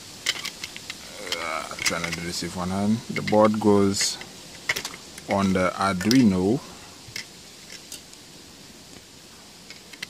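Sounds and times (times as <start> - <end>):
steady quiet hiss: 0.0 - 10.0.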